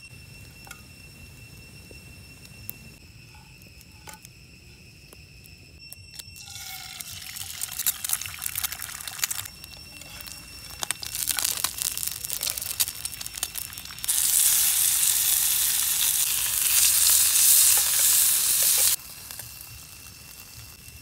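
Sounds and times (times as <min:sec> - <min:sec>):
food crackling in pan: 0:06.2 - 0:21.0
meat sizzling in pan: 0:06.4 - 0:21.0.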